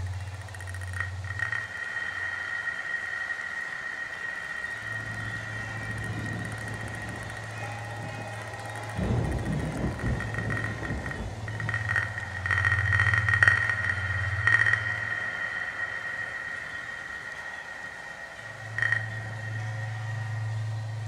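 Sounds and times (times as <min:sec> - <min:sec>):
grainy flickering texture: 0:00.0 - 0:21.0
low drone: 0:00.0 - 0:21.0
low rumbling swell: 0:00.0 - 0:21.0
steady high tone: 0:00.0 - 0:21.0.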